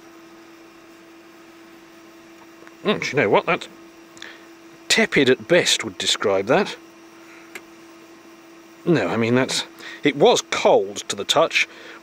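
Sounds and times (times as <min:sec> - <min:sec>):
low electrical hum: 0:00.0 - 0:12.0
man speaking: 0:02.8 - 0:03.8, 0:04.9 - 0:06.8, 0:08.8 - 0:11.7.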